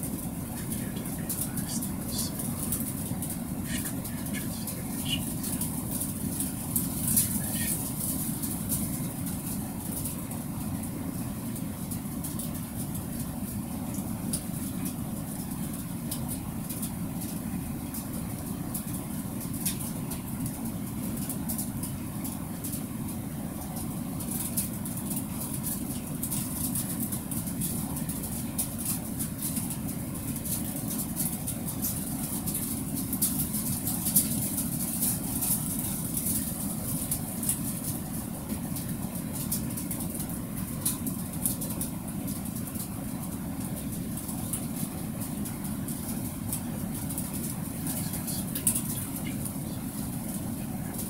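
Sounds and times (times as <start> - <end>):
low background rumble: 0.0 - 51.0.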